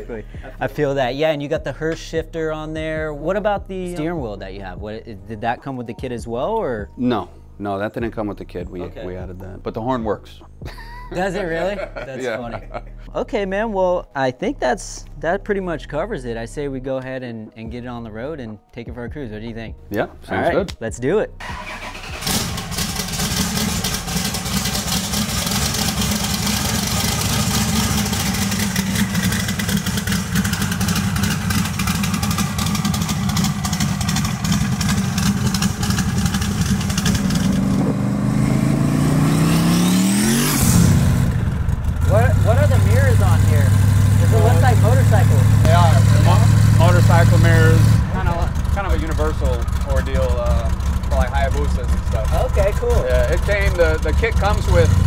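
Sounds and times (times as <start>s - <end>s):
engine running and revving: 21.5s - 55.0s.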